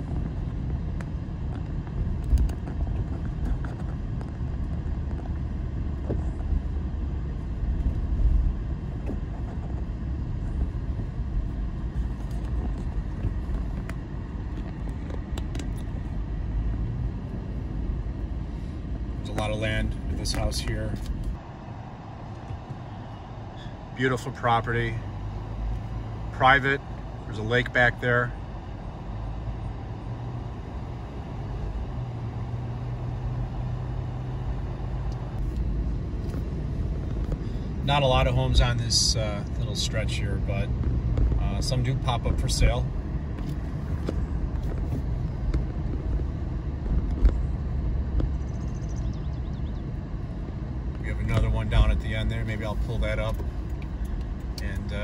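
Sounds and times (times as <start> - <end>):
car cabin road and engine rumble: 0.0 - 55.0.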